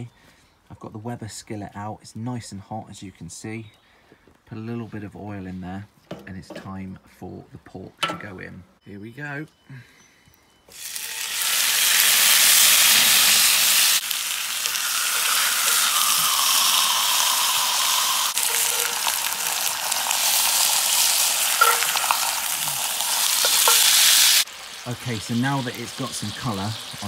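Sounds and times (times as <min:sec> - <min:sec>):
meat sizzling in hot oil: 0:10.7 - 0:27.0.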